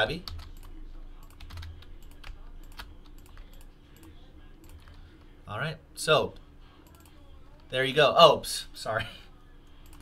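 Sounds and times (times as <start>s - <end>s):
typing on computer keyboard: 0.2s - 5.0s.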